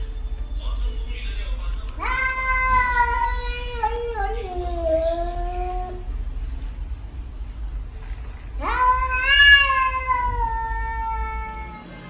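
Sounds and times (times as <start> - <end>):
cat meowing: 1.9 - 6.2, 8.6 - 12.0.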